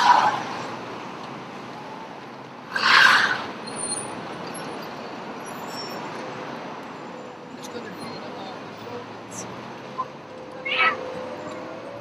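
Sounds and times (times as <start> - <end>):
traffic noise: 0.0 - 12.0.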